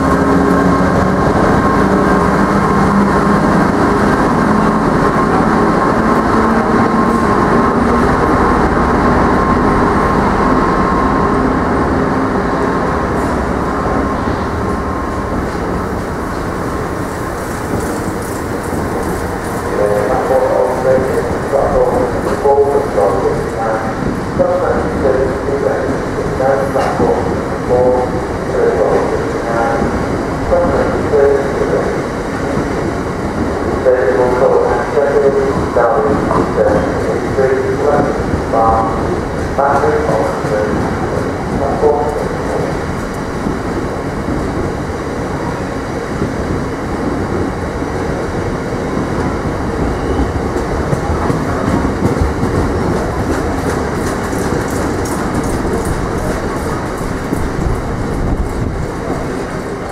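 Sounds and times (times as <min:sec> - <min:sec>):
train wheels rolling: 0:00.0 - 0:59.9.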